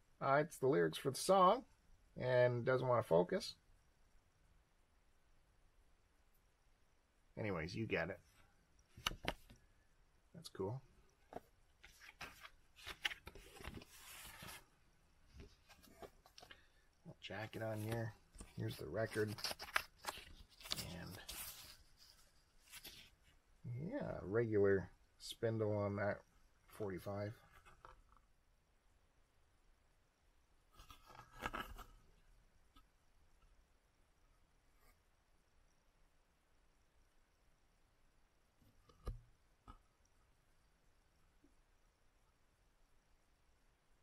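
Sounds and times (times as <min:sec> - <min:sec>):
paper rustling: 0:11.3 - 0:14.7, 0:17.4 - 0:23.1.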